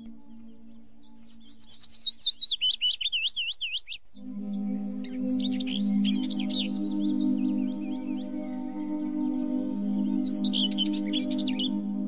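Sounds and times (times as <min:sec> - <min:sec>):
soft ambient music chords: 0:00.0 - 0:03.4, 0:04.0 - 0:12.0
bird whistling swooping notes: 0:00.0 - 0:12.0.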